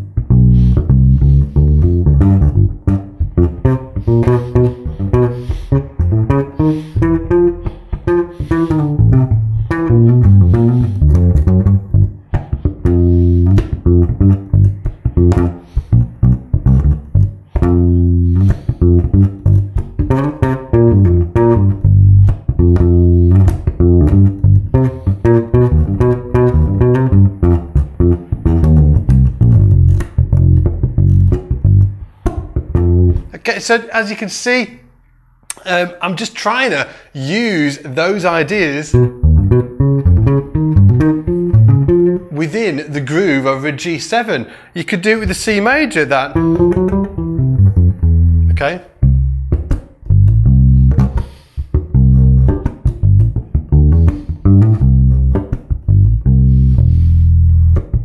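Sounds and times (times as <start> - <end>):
electric bass groove: 0.0 - 33.4, 38.9 - 42.6, 45.2 - 58.0.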